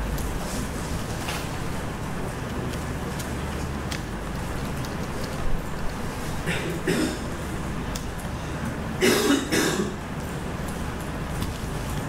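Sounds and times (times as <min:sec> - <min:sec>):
steady room hum: 0:00.0 - 0:12.0
person coughing: 0:06.4 - 0:07.3, 0:09.0 - 0:10.0.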